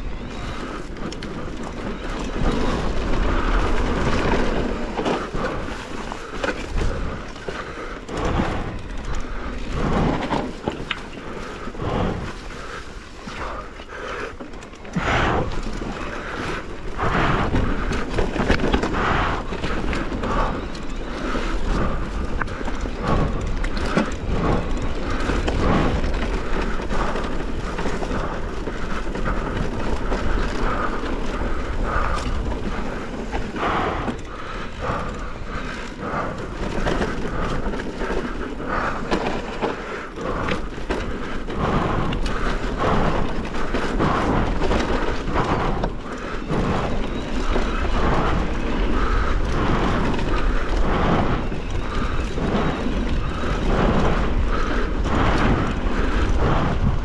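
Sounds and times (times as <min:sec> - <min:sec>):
bike rattling over bumps: 0:00.0 - 0:57.0
bike tyres on dirt and stones: 0:00.0 - 0:57.0
wind rumble on microphone: 0:00.0 - 0:57.0.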